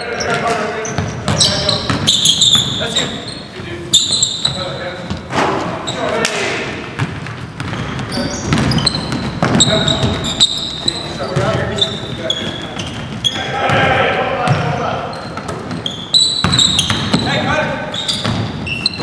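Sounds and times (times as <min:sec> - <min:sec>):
sneakers squeaking on gym floor: 0:00.0 - 0:19.0
basketball bouncing: 0:01.0 - 0:02.8, 0:06.8 - 0:17.3, 0:18.1 - 0:19.0.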